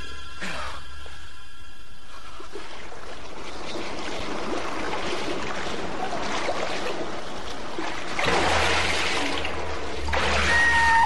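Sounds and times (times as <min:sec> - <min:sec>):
underwater churning water rush: 0:02.4 - 0:11.0.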